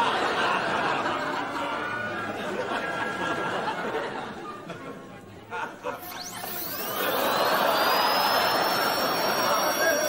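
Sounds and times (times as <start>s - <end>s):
dental drill whine: 6.0s - 10.0s.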